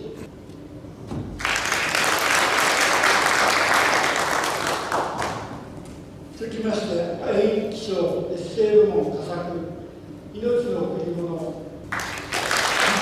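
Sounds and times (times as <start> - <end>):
audience applauding: 1.4 - 5.6, 11.9 - 13.0.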